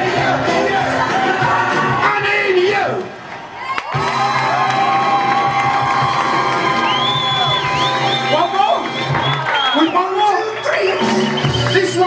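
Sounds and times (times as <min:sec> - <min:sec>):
live rock and roll music: 0:00.0 - 0:03.1, 0:03.9 - 0:12.0
audience cheering and shouting: 0:00.0 - 0:12.0.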